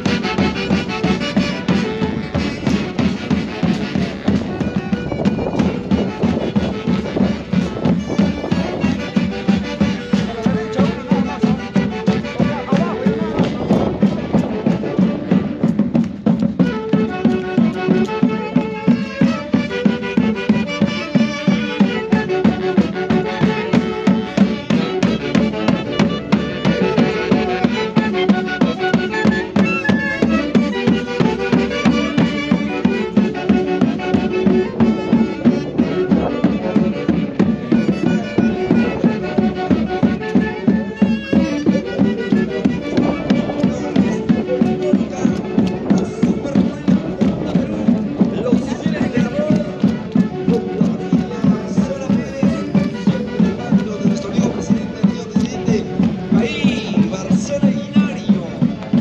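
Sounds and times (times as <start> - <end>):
steady drum beat: 0.0 - 59.0.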